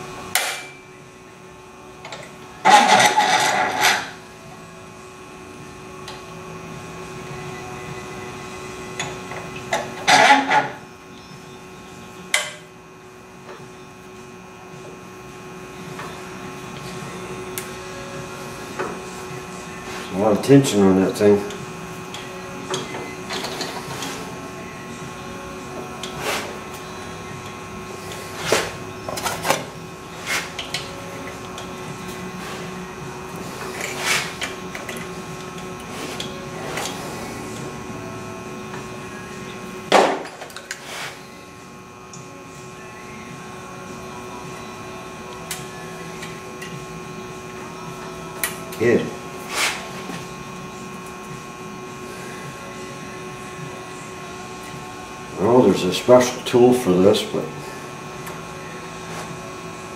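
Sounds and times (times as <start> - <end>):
steady low hum: 0.0 - 59.9
wire handling clicks and scrapes: 2.0 - 4.2, 10.0 - 10.8.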